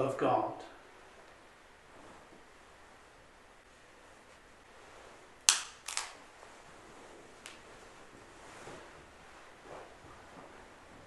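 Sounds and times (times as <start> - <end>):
wafer snapping: 5.4 - 6.6.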